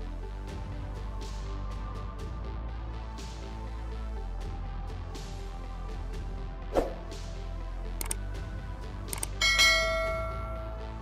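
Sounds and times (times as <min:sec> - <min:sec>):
low drone of background music: 0:00.0 - 0:11.0
bell strike ringing: 0:09.4 - 0:10.8.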